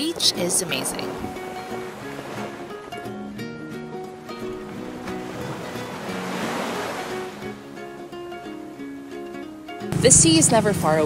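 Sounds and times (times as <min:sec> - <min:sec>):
sea waves: 0:00.0 - 0:11.0.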